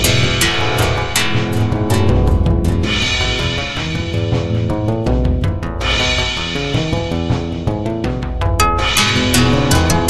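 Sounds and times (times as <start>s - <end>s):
heavy bass: 0.0s - 10.0s
sharp percussive hits: 0.0s - 10.0s.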